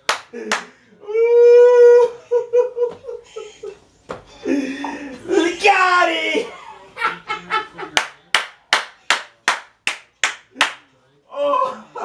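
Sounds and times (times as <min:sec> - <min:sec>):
hands clapping: 0:00.0 - 0:00.7, 0:07.9 - 0:10.9.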